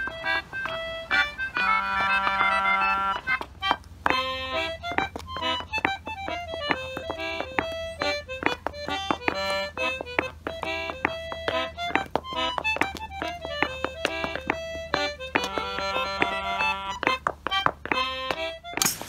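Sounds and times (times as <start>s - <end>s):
clog steps on brick paving: 0.0s - 19.0s
concertina playing folk tune: 0.0s - 19.0s.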